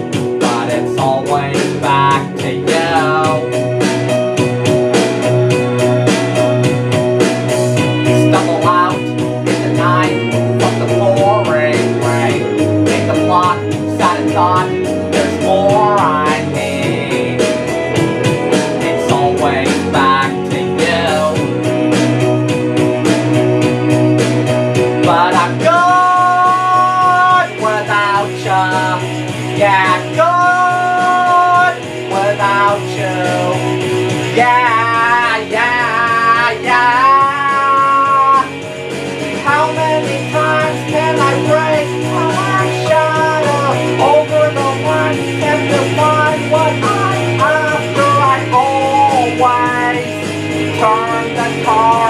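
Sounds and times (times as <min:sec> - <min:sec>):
man singing: 0:00.0 - 0:06.5, 0:07.7 - 0:22.2, 0:24.9 - 0:52.0
rock backing track: 0:00.0 - 0:52.0.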